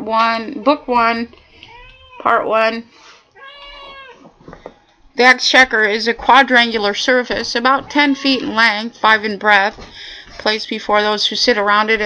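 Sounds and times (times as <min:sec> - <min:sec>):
cat meowing: 0:01.6 - 0:02.3, 0:03.4 - 0:04.3.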